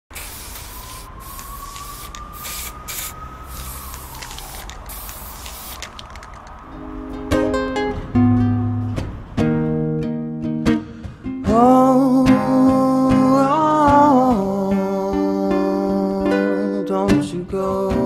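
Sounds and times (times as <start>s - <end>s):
spray paint can hissing: 0.1s - 6.6s
plucked guitar chords: 6.7s - 18.0s.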